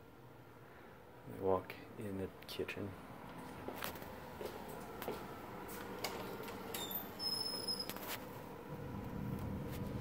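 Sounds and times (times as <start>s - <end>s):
door squeaking: 6.6s - 8.1s.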